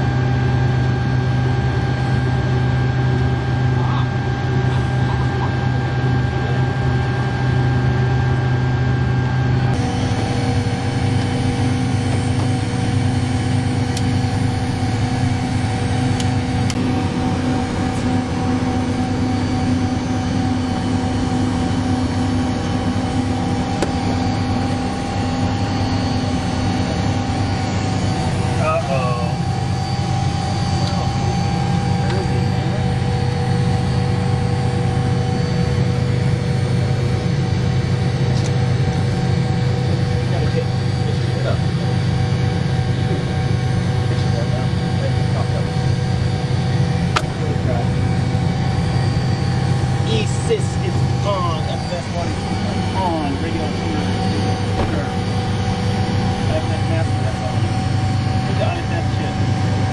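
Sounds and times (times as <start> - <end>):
aircraft cabin systems hum: 0.0 - 59.9.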